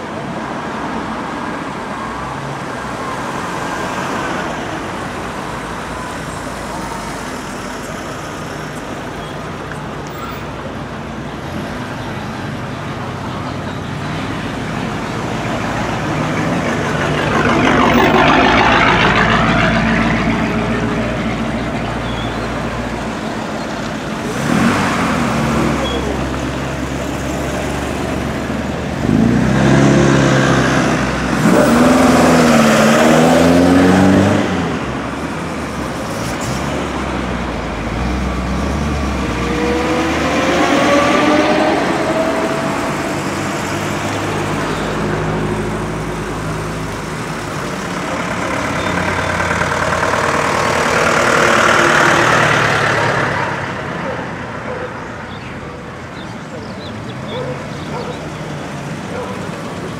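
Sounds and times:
cars driving past: 0:00.0 - 0:59.9
engine revving: 0:14.9 - 0:21.8, 0:24.2 - 0:26.4, 0:27.4 - 0:35.0, 0:35.8 - 0:54.8.

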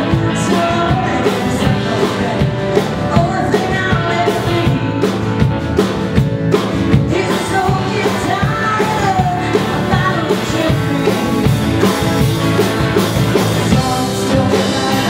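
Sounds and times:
woman singing: 0:00.0 - 0:05.5, 0:06.9 - 0:12.0, 0:13.5 - 0:15.0
drum kit beat: 0:00.0 - 0:15.0.

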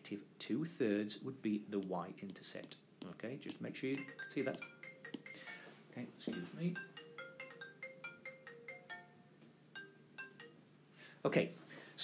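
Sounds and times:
phone ringtone melody: 0:04.0 - 0:10.7.

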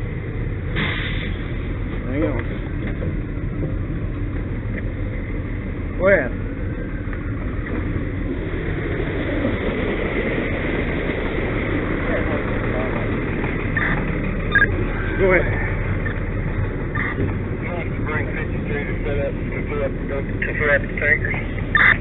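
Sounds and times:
fire engine engine droning: 0:00.0 - 0:22.0
voices: 0:05.8 - 0:22.0.

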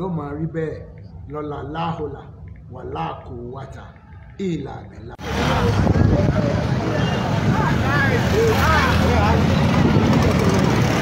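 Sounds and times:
crowd voices: 0:05.2 - 0:11.0
motorcycle engines running: 0:05.2 - 0:11.0.

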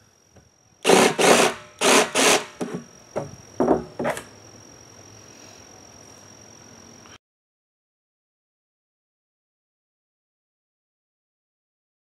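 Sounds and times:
jigsaw cutting plastic: 0:00.9 - 0:02.8.

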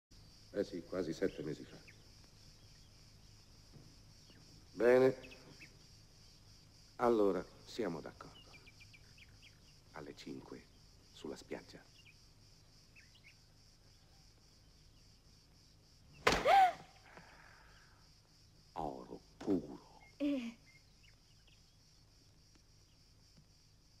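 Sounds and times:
faint high hiss: 0:00.1 - 0:24.0
person crying out: 0:16.4 - 0:16.9.

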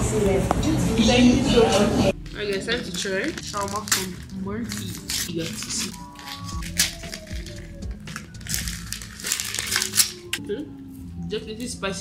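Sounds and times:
background music with held tones: 0:00.0 - 0:12.0
paper wrapper crinkling: 0:02.2 - 0:10.4.

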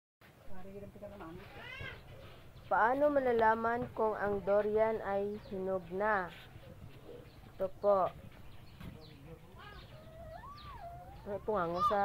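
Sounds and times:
faint voices: 0:01.1 - 0:12.0.

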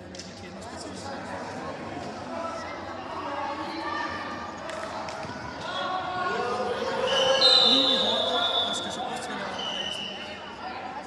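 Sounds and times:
voices calling out in a hall: 0:00.0 - 0:11.0
referee's whistle blast: 0:07.1 - 0:08.9.

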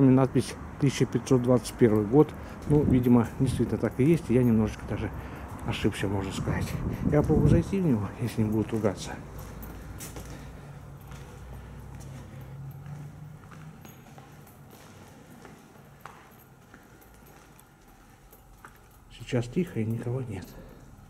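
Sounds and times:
footsteps: 0:01.7 - 0:21.0.

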